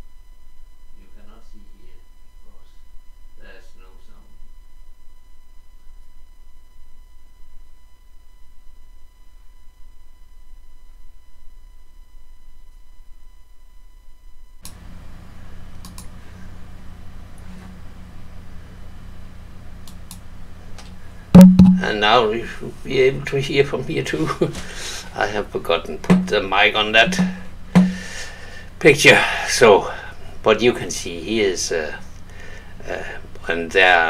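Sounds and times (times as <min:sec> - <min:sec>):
faint electrical hum: 0:00.0 - 0:34.0
microphone hiss and mains hum: 0:00.0 - 0:34.0
sharp clicks: 0:15.8 - 0:16.1, 0:19.8 - 0:20.2
microphone handling thump: 0:21.4 - 0:21.9, 0:26.0 - 0:26.4, 0:27.0 - 0:28.2.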